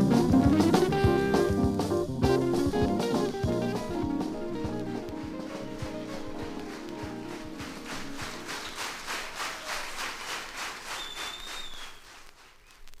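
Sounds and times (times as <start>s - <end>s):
drum hits: 0.0s - 9.5s
audience applause: 3.5s - 13.0s
whistle from crowd: 10.8s - 12.2s.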